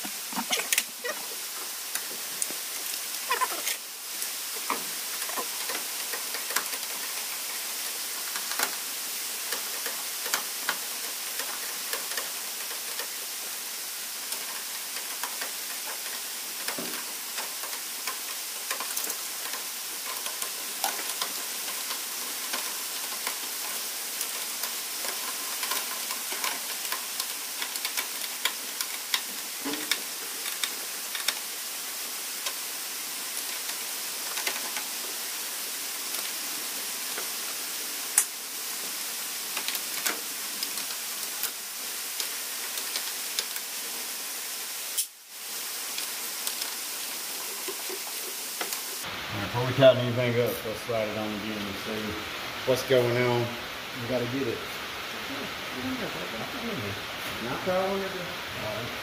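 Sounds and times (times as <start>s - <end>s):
steady hiss: 0.0s - 59.0s.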